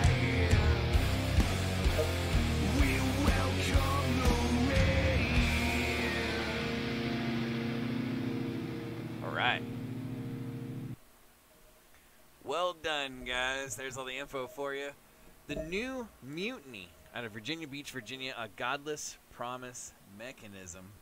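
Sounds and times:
heavy rock band playing: 0.0 - 9.9
held guitar chord ringing: 5.4 - 11.0.

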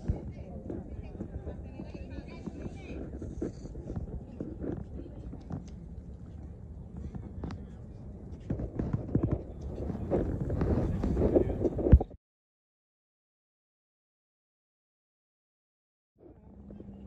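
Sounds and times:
wind on microphone: 0.0 - 12.2.

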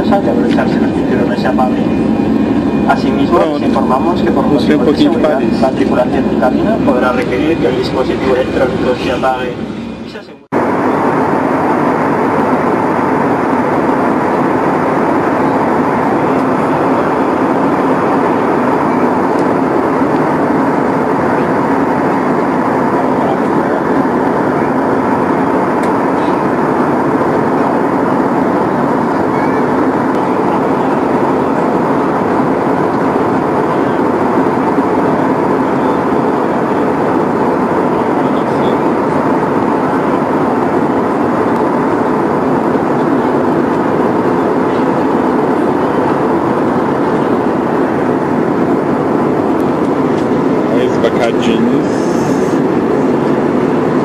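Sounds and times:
jet airliner cabin roar: 0.0 - 54.0.

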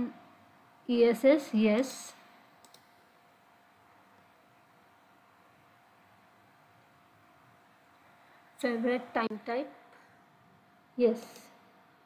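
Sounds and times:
faint computer mouse clicks: 2.6 - 2.9.

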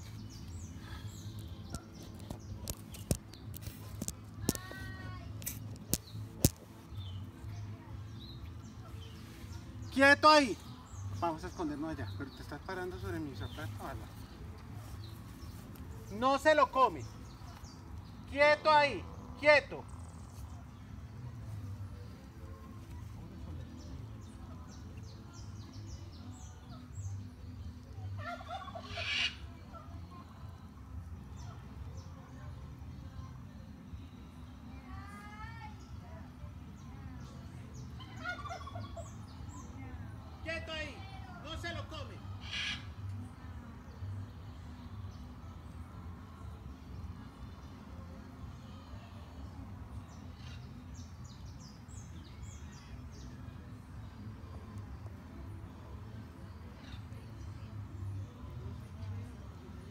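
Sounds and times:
bird warbling call: 42.4 - 42.9.

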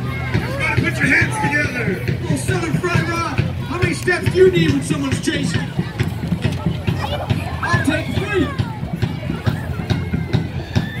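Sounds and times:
low thumping beat: 0.0 - 11.0
people's voices: 0.0 - 11.0.

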